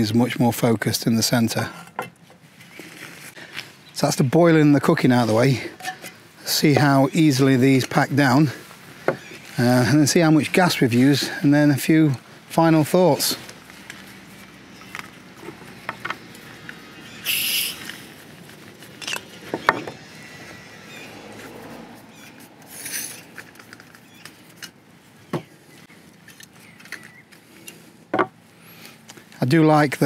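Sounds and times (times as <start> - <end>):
short gas hisses: 17.2 - 17.8.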